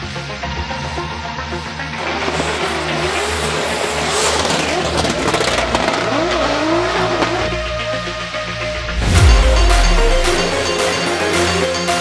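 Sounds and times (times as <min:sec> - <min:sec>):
background music: 0:00.0 - 0:12.0
car engine revving: 0:01.8 - 0:11.7
tyre squeal: 0:02.0 - 0:08.0.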